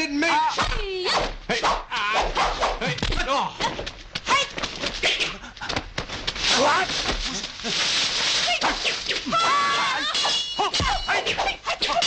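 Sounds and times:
ringing metal clash: 10.1s - 11.3s.

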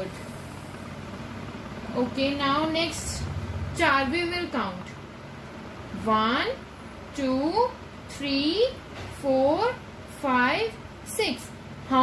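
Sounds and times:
low even rumble: 2.1s - 5.4s.

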